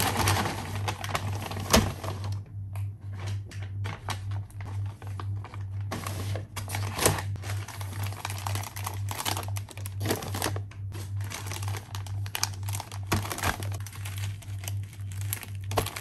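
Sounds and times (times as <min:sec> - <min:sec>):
crinkling snack bags: 0:00.0 - 0:02.3, 0:03.8 - 0:16.0
low pulsing hum: 0:00.0 - 0:16.0.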